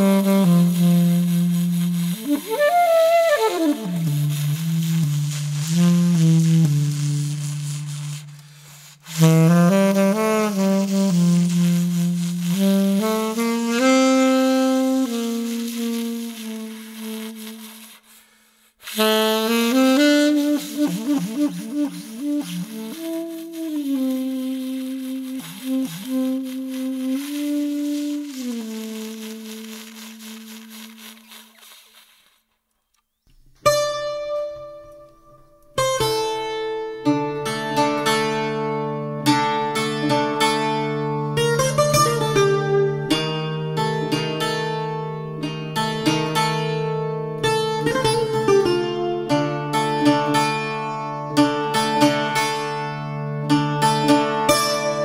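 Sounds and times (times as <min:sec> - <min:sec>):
saxophone slow melody: 0:00.0 - 0:18.1, 0:18.8 - 0:32.1, 0:47.4 - 0:55.0.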